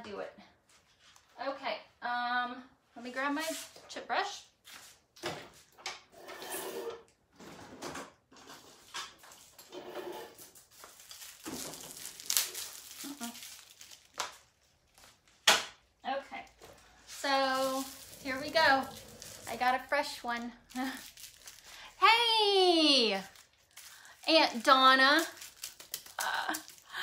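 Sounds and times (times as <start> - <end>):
rummaging knocks and rustles: 7.4 - 14.2, 16.6 - 21.8.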